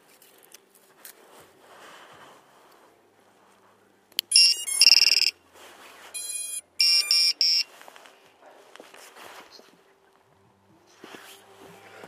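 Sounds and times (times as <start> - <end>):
electronic startup beeps: 4.3 - 5.3, 6.2 - 7.7.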